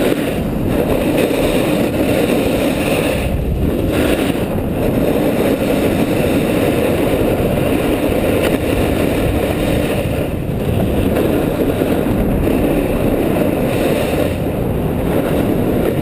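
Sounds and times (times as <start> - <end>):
snowboard scraping over snow: 0.0 - 16.0
wind rushing over microphone: 0.0 - 16.0.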